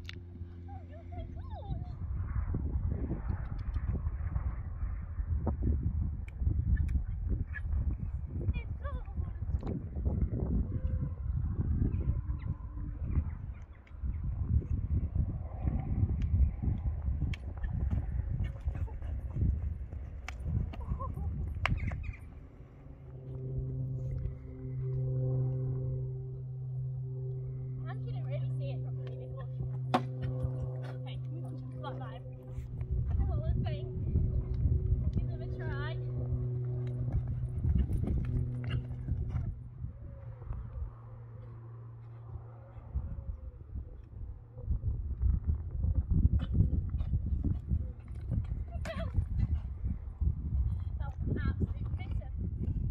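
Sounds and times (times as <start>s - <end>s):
low rumbling of horse hooves: 0.0s - 52.9s
steady low hum: 0.0s - 52.9s
muffled hoofbeats on sand: 17.0s - 22.3s, 30.2s - 39.7s, 45.7s - 52.9s.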